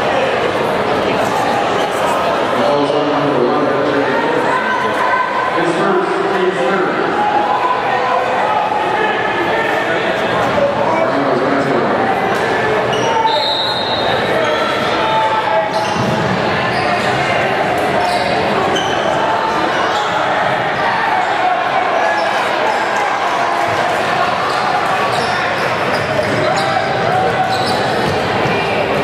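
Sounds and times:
crowd chatter echoing: 0.0 - 29.0
sneaker squeaks: 12.9 - 15.0, 15.6 - 17.2, 18.0 - 19.2, 19.8 - 20.9, 24.4 - 28.3.

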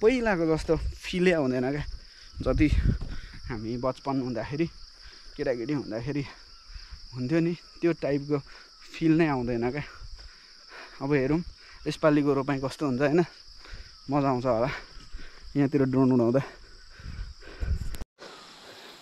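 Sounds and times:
man talking: 0.0 - 2.9, 3.5 - 4.8, 5.4 - 6.4, 7.1 - 9.9, 11.0 - 13.3, 14.1 - 14.8, 15.5 - 16.6
high-pitched insect chorus: 0.0 - 19.0.

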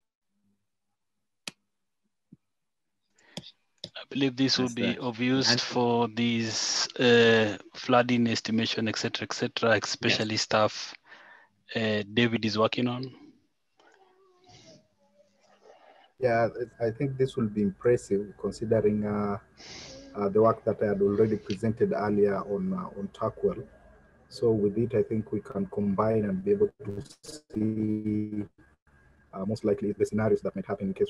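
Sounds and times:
faint wavering tone: 4.5 - 5.6.

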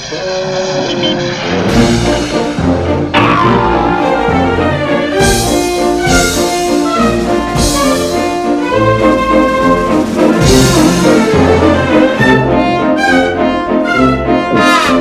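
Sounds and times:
orchestral cartoon music: 0.0 - 15.0
trombones and trumpets melody: 1.4 - 15.0.

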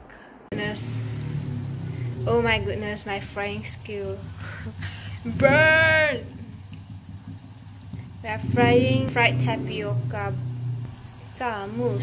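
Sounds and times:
low rumble: 0.3 - 12.0
oil bubbling and hissing: 0.5 - 12.0.

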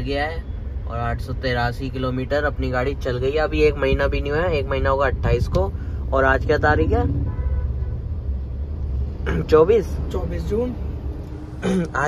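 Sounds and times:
car engine low rumble: 0.0 - 12.0
road noise: 0.0 - 12.0.

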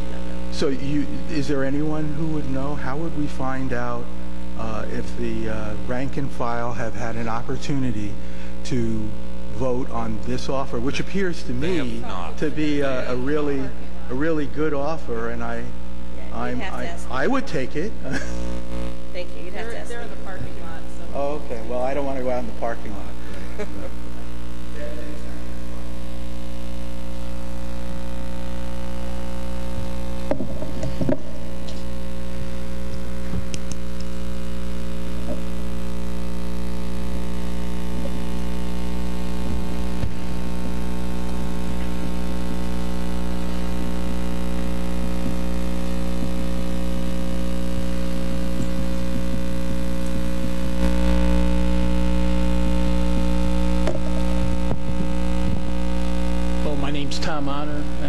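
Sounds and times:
electrical mains hum: 0.0 - 58.0.

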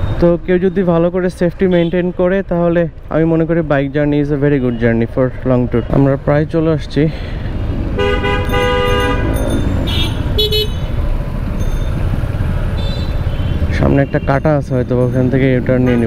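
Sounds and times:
traffic rumble: 0.0 - 16.0
vehicle horns honking: 8.0 - 11.0, 12.7 - 14.5, 15.8 - 16.0.

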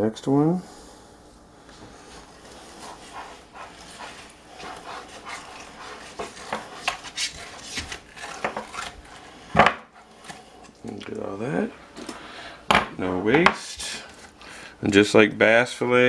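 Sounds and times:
knife scraping fish skin: 2.8 - 9.4.

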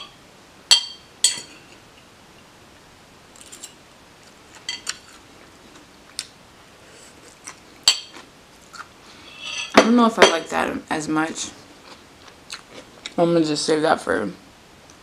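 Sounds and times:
fork clinking on ceramic plate: 4.6 - 5.1, 9.3 - 10.5.

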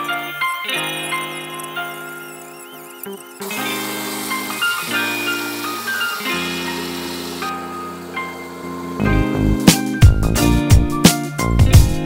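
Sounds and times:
background music with held chords: 0.0 - 12.0.

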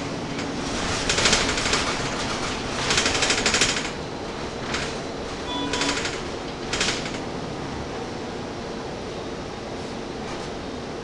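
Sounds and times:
rapid rattling clatter: 0.0 - 7.3
bus running: 0.0 - 11.0
ventilation fans: 0.0 - 11.0.

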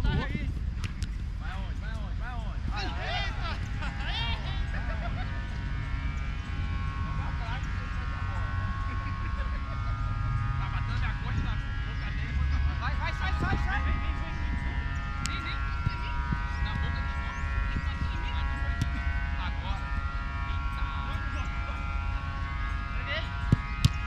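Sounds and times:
distant players calling: 0.0 - 24.0
wind rumbling on microphone: 0.0 - 24.0.

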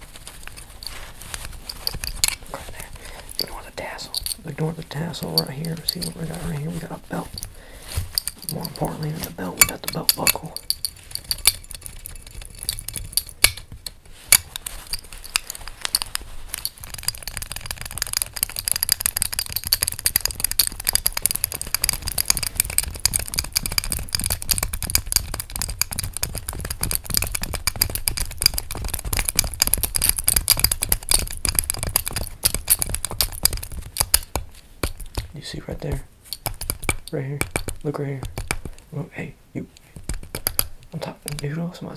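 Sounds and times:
steady scratching: 0.0 - 41.9
fingernails tapping on metal buckle: 0.4 - 38.8, 39.8 - 41.5.

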